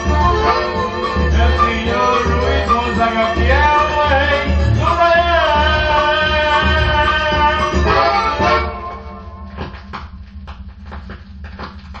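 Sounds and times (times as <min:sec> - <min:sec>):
song playing on a turntable: 0:00.0 - 0:09.6
steady low hum: 0:00.0 - 0:12.0.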